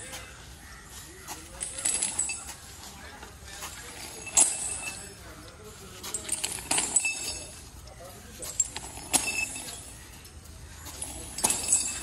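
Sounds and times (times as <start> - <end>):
metal chain clinking: 0.0 - 12.0
light metallic ringing: 3.9 - 7.7, 8.3 - 10.2, 10.8 - 12.0.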